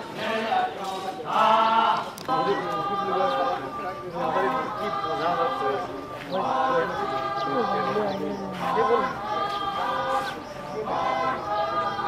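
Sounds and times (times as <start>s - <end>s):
group chanting in held notes: 0.0s - 12.0s.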